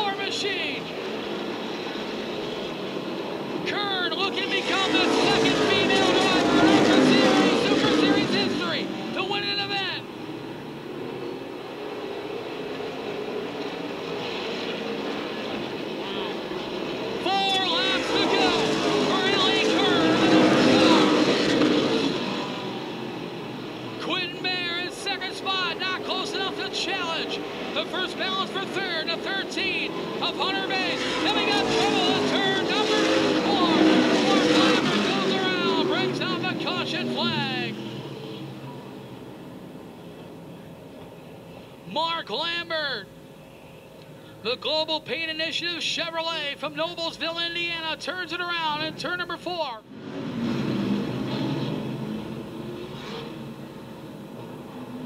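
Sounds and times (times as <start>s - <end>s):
stock cars racing past: 0.0s - 41.4s, 49.8s - 55.0s.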